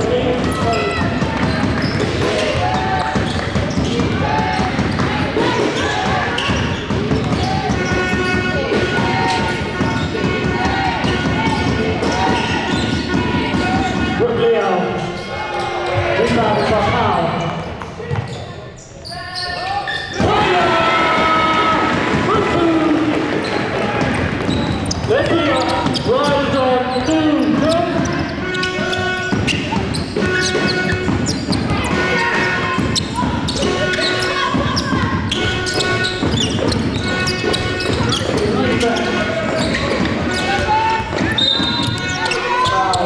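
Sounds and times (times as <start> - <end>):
basketball bouncing on wooden court: 0.0 - 14.2, 20.1 - 43.0
people shouting: 7.3 - 14.2, 19.2 - 23.2, 28.5 - 43.0.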